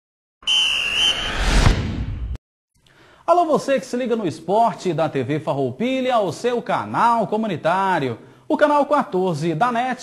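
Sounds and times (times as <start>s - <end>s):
high whistle-like tone: 0.4s - 2.4s
rushing noise into low boom: 1.1s - 2.4s.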